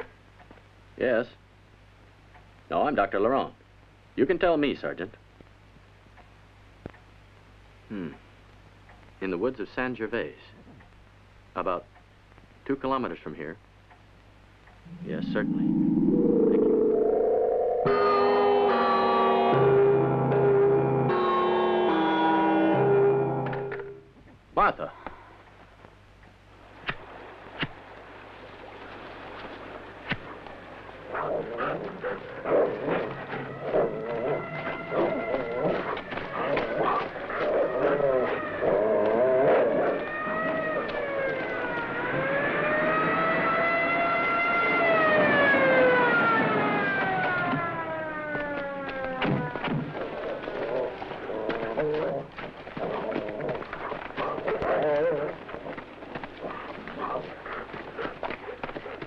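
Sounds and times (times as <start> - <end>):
siren wailing: 14.9 - 20.3, 32.9 - 49.9.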